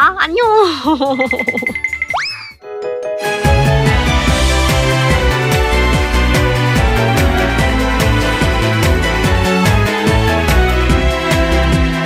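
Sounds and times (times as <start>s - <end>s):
upbeat outro music: 2.8s - 12.0s.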